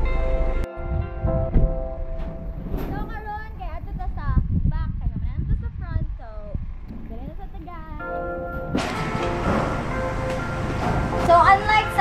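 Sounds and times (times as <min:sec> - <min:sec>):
background music: 0:00.0 - 0:03.6, 0:07.4 - 0:12.0
woman talking: 0:02.9 - 0:08.2, 0:11.2 - 0:12.0.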